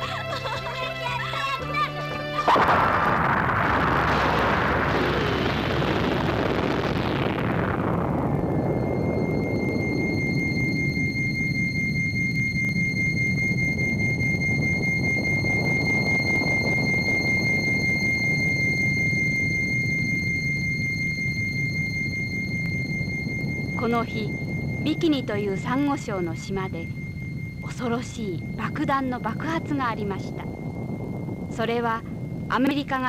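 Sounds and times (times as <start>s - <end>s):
high-pitched whine: 0.0s - 33.0s
low rumble: 0.0s - 33.0s
explosion roar: 2.4s - 11.1s, 21.5s - 33.0s.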